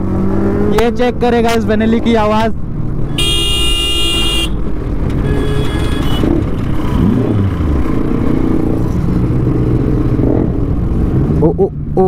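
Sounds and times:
motorcycle engines running: 0.0 - 12.0
fainter vehicle horn: 3.1 - 4.6, 5.2 - 6.4
vehicle horn: 3.1 - 4.6, 5.2 - 6.4.

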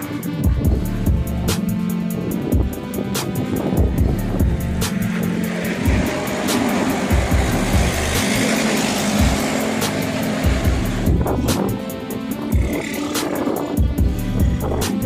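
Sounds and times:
background music with steady beat: 0.0 - 15.0
truck passing by: 0.9 - 15.0.

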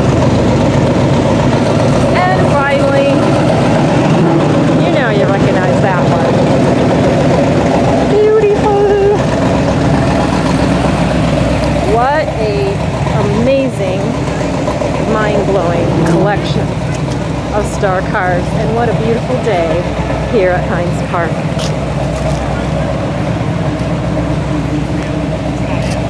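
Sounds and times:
steady low drone: 0.0 - 26.0
people talking: 2.1 - 3.3, 4.1 - 6.7, 8.0 - 9.3, 11.7 - 21.7, 22.3 - 23.9, 24.7 - 26.0.

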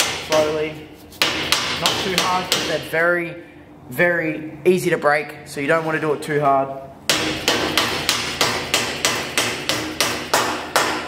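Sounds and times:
soft-faced hammer tapping: 1.2 - 2.8, 7.1 - 11.0.

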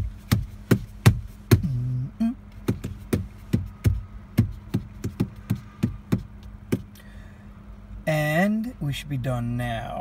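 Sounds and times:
faint steady hum: 0.0 - 10.0
dashboard clicking: 2.6 - 6.9.

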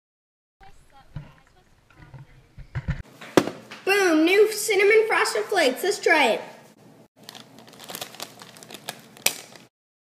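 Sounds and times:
plastic bag crinkling: 7.2 - 9.7.

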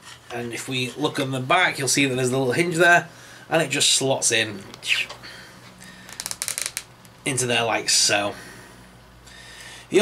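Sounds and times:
plastic parts clicking and scraping: 6.1 - 6.9.

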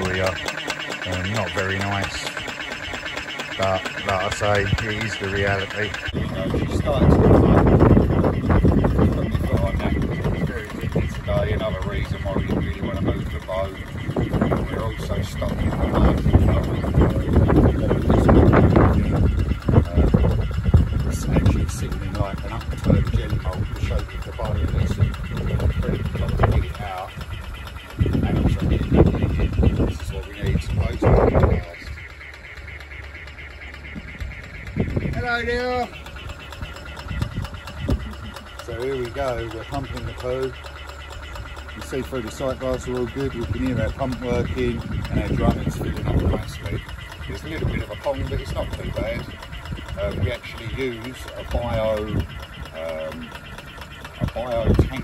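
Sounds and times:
bursts of rough noise: 0.0 - 55.0
diaphragm pump running: 0.0 - 55.0
duck quacking: 0.0 - 55.0.

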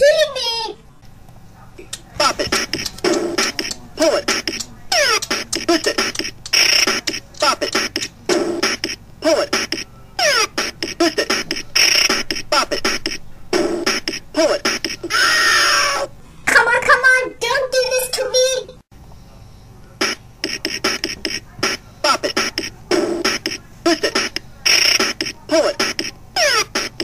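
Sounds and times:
clipped electronic voice calls: 1.8 - 16.1, 20.0 - 27.0.

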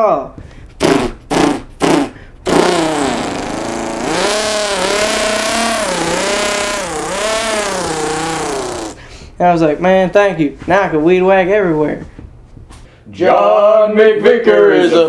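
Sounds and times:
man imitating engine with mouth: 0.8 - 9.1.

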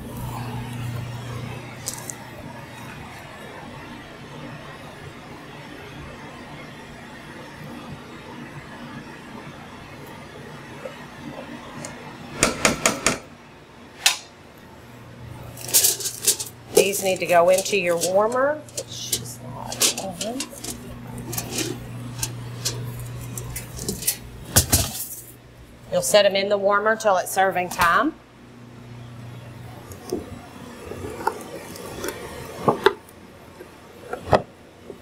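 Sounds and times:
kitchen ventilation hum: 0.0 - 35.0
metal utensils and pans clinking: 15.6 - 25.4.

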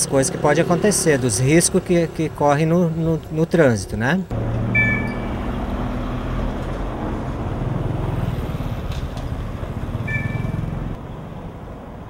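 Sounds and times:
car engines passing slowly: 0.0 - 12.0
road noise: 0.0 - 12.0.

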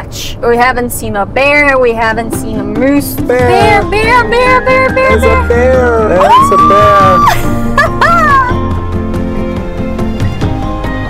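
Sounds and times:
background music with sustained notes: 2.0 - 11.0
person squealing excitedly: 4.4 - 8.6.

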